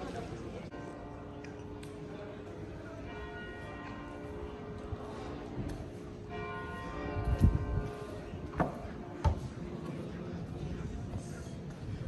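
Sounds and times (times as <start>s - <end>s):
church bell ringing: 0.7s - 9.2s.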